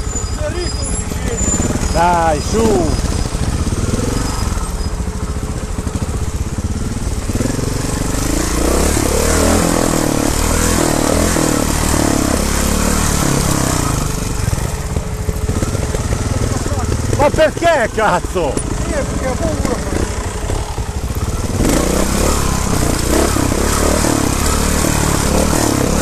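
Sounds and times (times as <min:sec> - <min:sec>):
motorcycle engine revving: 0:00.0 - 0:26.0.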